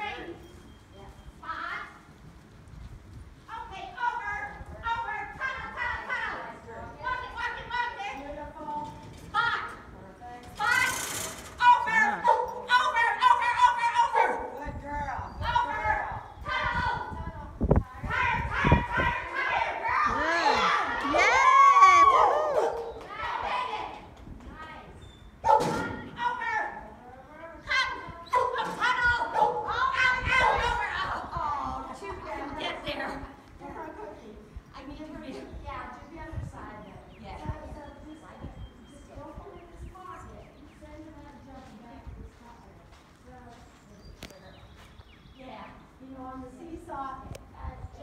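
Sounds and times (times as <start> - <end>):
dog barking: 14.0 - 14.6, 22.3 - 22.9, 25.4 - 25.8, 29.3 - 29.7.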